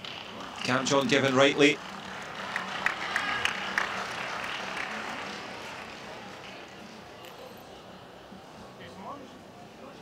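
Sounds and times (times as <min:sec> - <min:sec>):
crowd applauding: 0:00.0 - 0:06.6.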